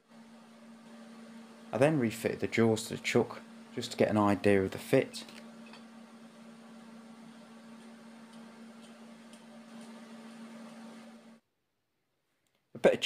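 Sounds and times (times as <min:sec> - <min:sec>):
machine hum: 0:00.0 - 0:11.4.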